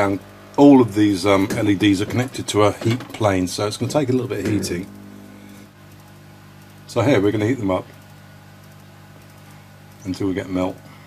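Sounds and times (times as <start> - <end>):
hot-air gun humming: 0.0 - 7.4.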